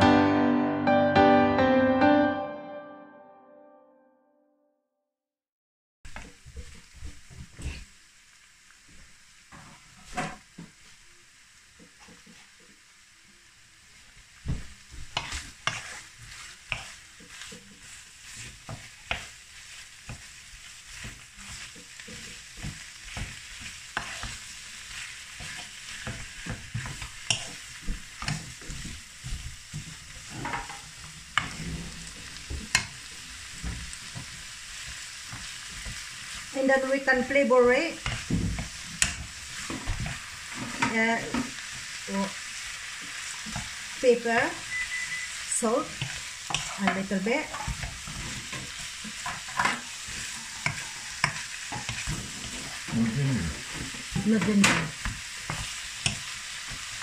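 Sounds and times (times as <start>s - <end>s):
meat and onions sizzling: 6.1s - 57.0s
wooden spoon scraping a pan: 14.5s - 57.0s.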